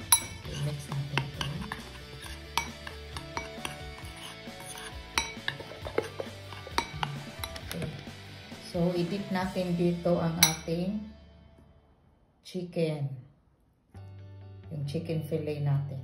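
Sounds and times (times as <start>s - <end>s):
metal spoon stirring in bowl: 0.0s - 8.2s, 10.4s - 10.7s
soft background music: 0.0s - 16.0s.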